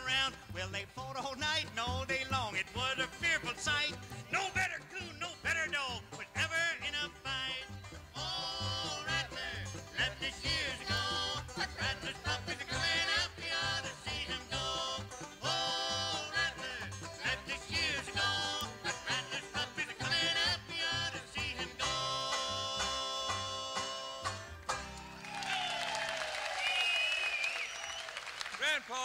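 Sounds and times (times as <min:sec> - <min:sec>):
live country band music: 0:00.0 - 0:25.5.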